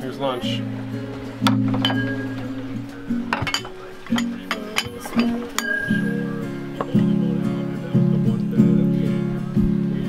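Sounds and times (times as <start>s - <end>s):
background music: 0.0s - 10.0s
ceramic plates clinking on table: 0.8s - 7.2s.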